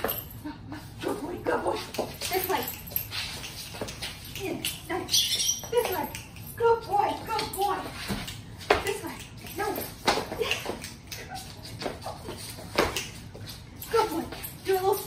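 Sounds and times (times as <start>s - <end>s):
feet and paws on hardwood floor: 0.0s - 15.0s
woman talking to dog: 1.0s - 2.8s, 4.3s - 8.0s, 8.7s - 11.5s, 13.8s - 15.0s.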